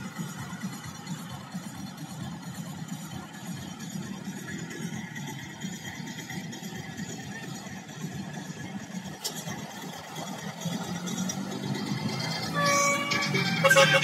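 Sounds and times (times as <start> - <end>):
distant heavy trucks passing: 0.0 - 14.0.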